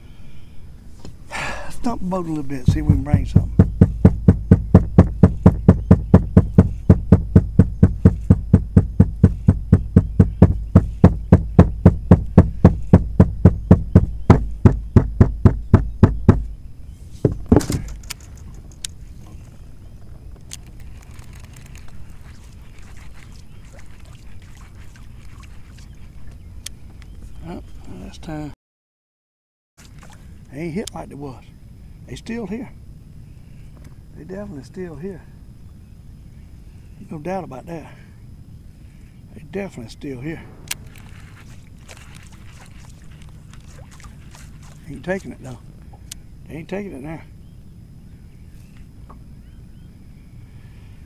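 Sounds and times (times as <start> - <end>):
wooden stick thumping boat deck: 2.6 - 16.6, 17.2 - 18.1.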